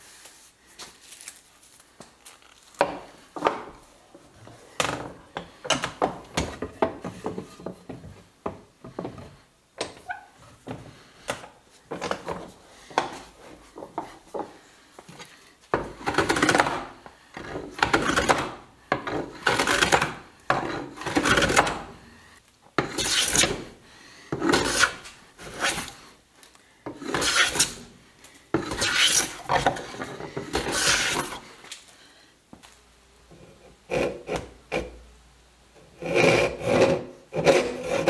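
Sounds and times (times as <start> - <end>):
hand plane cutting wood: 16.0 - 21.9, 22.8 - 23.6, 24.4 - 26.0, 27.0 - 27.8, 28.6 - 31.4, 33.9 - 35.0, 36.0 - 38.0.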